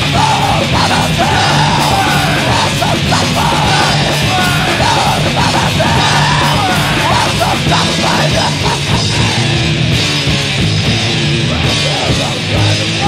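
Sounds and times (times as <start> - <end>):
harsh yelled vocal: 0.0 - 10.0, 10.8 - 13.0
bass: 0.0 - 13.0
distorted electric guitar: 0.0 - 13.0
drums: 0.0 - 13.0.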